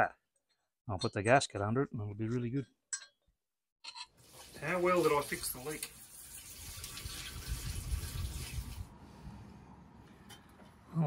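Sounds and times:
water pouring into radiator: 4.2 - 8.9.

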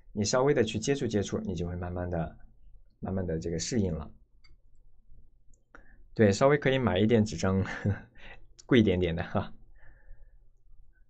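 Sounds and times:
person speaking: 0.0 - 4.6, 6.1 - 9.7.

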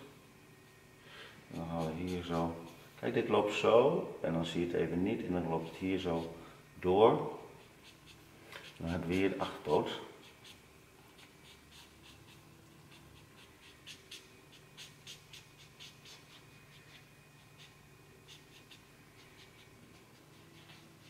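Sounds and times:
marker scratching on paper: 1.5 - 2.8, 7.6 - 9.3, 10.2 - 21.0.

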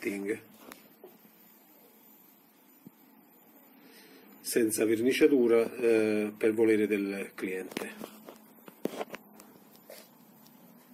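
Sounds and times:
faint room hum: 0.0 - 10.9.

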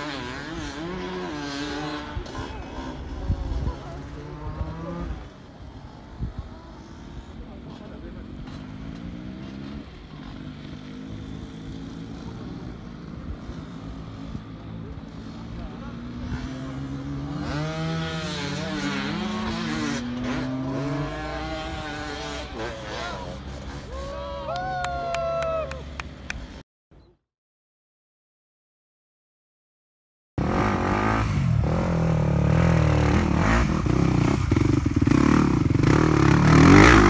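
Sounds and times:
dirt bike engines revving: 0.0 - 26.6, 30.4 - 37.0
people calling out: 22.7 - 26.0.

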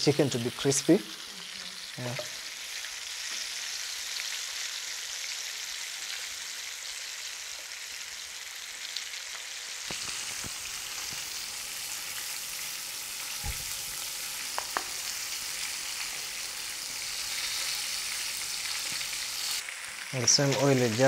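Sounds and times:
chicken sizzling in oil: 0.0 - 21.0.

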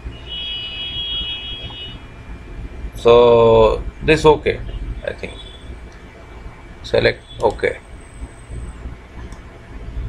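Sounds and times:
low background hum: 0.0 - 10.0
steady high-pitched tone: 0.0 - 10.0.

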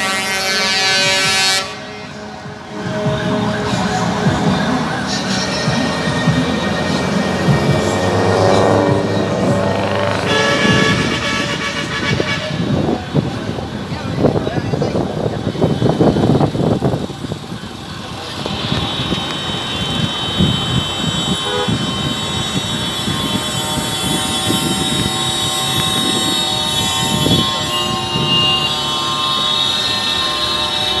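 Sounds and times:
truck air horn blasts: 0.0 - 13.2, 18.2 - 31.0
diesel truck engines: 0.0 - 31.0.

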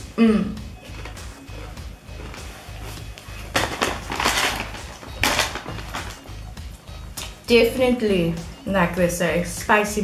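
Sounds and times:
background music: 0.0 - 10.0
crunchy snack being chewed: 0.8 - 2.3.

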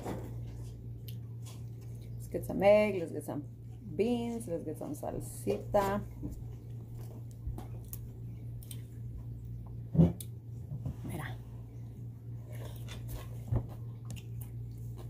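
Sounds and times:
low hum: 0.0 - 15.0
person chewing food: 0.5 - 2.2, 6.3 - 10.4, 12.2 - 15.0.

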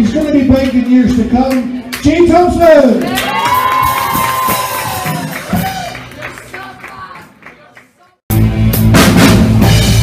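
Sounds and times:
audience cheering: 3.0 - 7.8
person whooping: 3.1 - 6.0.

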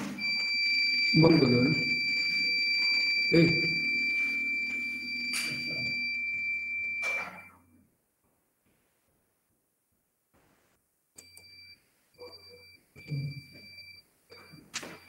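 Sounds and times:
high-pitched tone: 0.0 - 7.6
room noise: 0.0 - 15.0.

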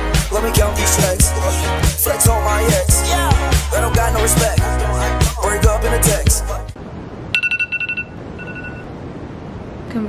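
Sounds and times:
rapid high alarm beeps: 7.4 - 8.9.

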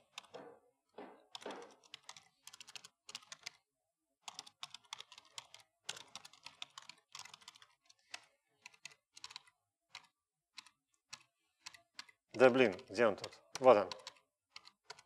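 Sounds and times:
faint keyboard typing: 0.0 - 0.4, 1.2 - 3.6, 4.2 - 15.0.

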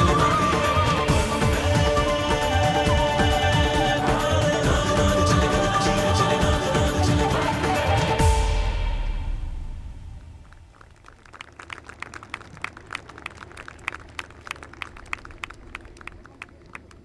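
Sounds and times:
festive music: 0.0 - 10.3
crowd applause: 10.5 - 17.0.

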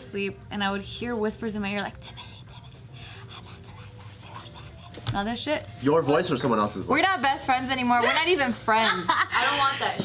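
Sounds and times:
woman whispering: 1.8 - 5.3.

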